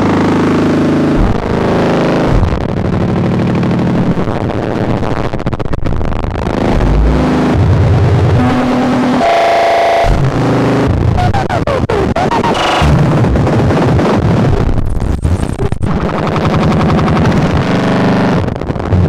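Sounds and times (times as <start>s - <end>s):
modular synthesizer harsh drones: 0.0s - 5.1s, 6.2s - 14.6s.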